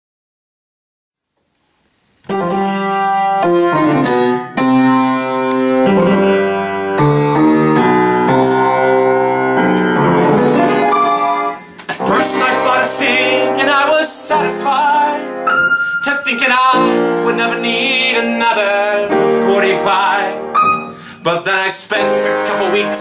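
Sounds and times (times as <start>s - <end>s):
piano chords: 2.2s - 23.0s
man singing: 11.8s - 23.0s.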